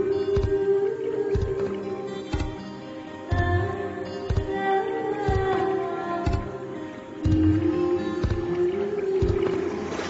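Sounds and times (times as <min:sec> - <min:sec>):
soft low beat: 0:00.3 - 0:00.7, 0:01.3 - 0:01.8, 0:03.3 - 0:04.6, 0:05.3 - 0:05.6, 0:07.2 - 0:08.6, 0:09.2 - 0:09.6.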